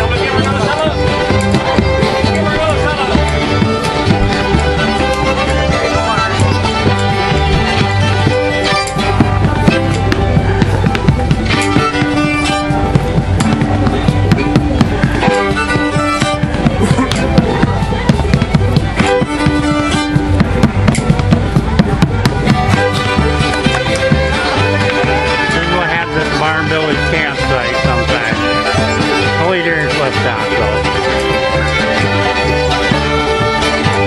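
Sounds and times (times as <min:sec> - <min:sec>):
string band playing lively tune: 0:00.0 - 0:34.0.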